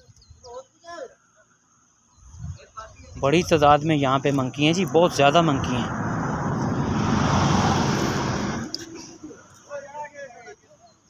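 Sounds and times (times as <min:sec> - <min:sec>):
vehicle passing on road: 0:03.6 - 0:09.4.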